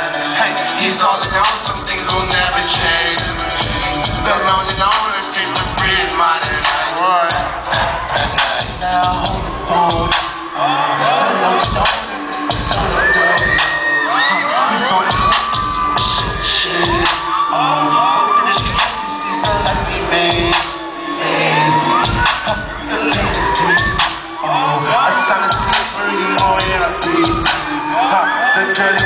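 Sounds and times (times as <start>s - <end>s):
crowd cheering and shouting: 0.0s - 29.0s
hip-hop music over pa: 0.0s - 29.0s.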